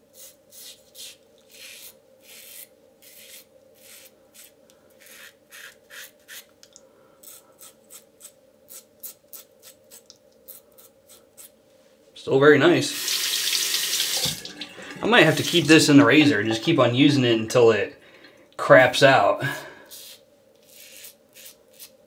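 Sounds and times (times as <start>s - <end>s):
razor scraping stubble: 0.2s - 6.5s, 19.9s - 22.0s.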